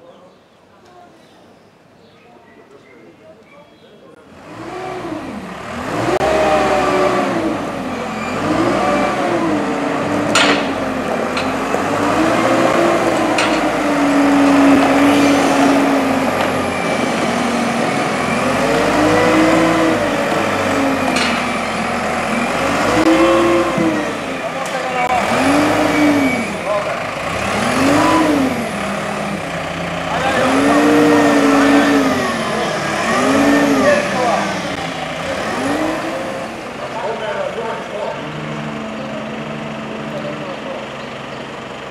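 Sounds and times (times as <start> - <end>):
diesel engine revving: 4.2 - 41.9
sharp knocks: 10.3 - 11.9.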